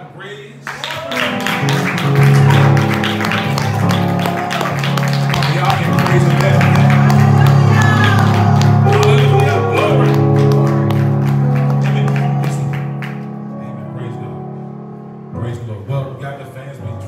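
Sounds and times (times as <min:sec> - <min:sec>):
hand clapping: 0:00.7 - 0:13.5
electronic keyboard chords: 0:01.0 - 0:17.0
voices: 0:02.6 - 0:10.4.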